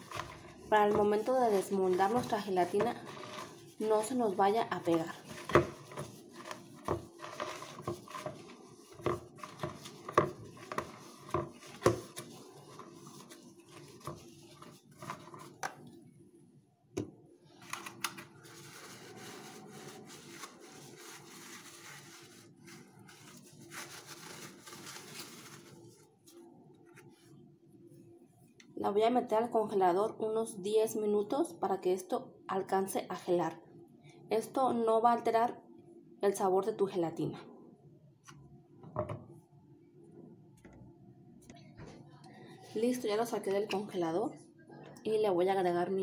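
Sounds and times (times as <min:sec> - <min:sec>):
paper towel rubbing plastic: 0:00.0 - 0:15.7, 0:18.3 - 0:27.4.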